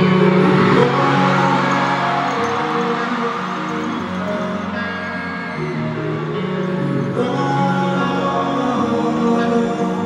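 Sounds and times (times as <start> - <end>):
live concert music over sound system: 0.0 - 10.0.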